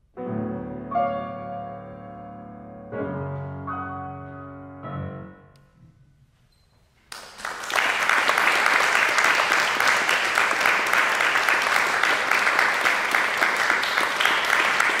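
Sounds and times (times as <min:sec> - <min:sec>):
audience applauding: 0:07.1 - 0:15.0.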